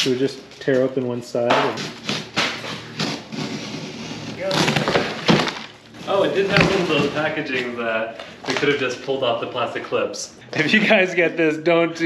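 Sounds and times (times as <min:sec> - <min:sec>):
cardboard box ripping: 0:02.0 - 0:07.2.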